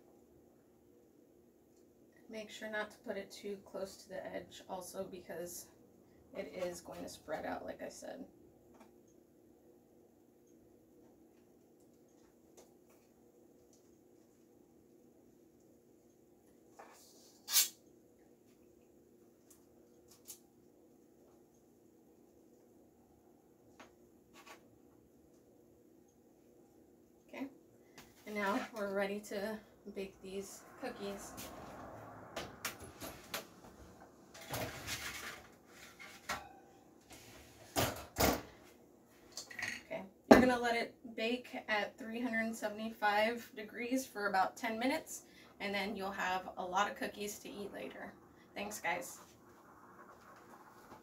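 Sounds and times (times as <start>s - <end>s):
baking sheet scraping on rack: 16.8s - 17.8s, 34.4s - 36.3s.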